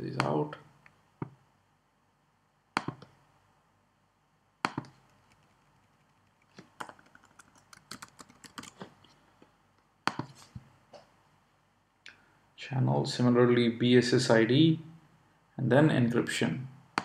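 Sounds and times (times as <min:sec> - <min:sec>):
loud keyboard clicks: 0:04.7 - 0:08.9
typing on computer keyboard: 0:04.7 - 0:08.9.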